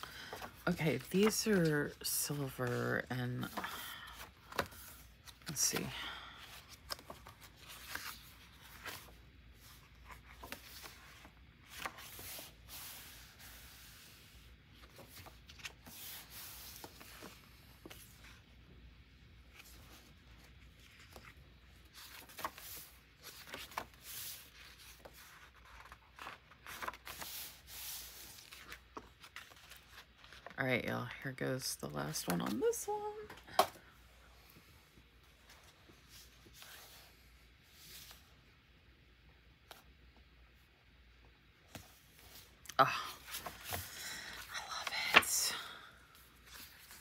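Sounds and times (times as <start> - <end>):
paper pages rustling: 0.0 - 18.5, 19.4 - 30.6, 43.2 - 45.5.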